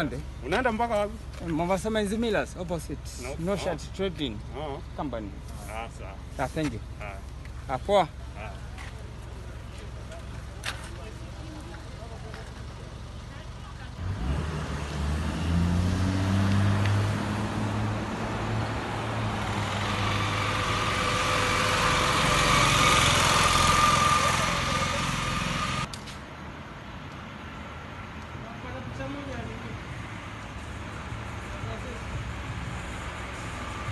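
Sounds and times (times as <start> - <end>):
vehicle engine pulling away: 0.0 - 25.9
road and wind noise: 0.0 - 33.9.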